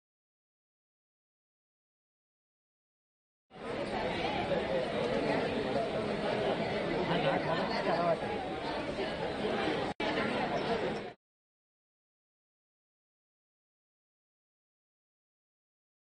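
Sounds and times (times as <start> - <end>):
audience chattering: 3.5 - 11.2.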